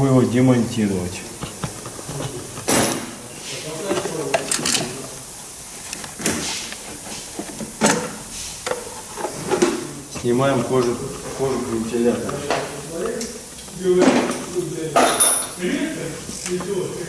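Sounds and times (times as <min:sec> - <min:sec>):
tools scraping and clattering: 0:01.4 - 0:05.1, 0:05.9 - 0:13.1, 0:13.9 - 0:15.6.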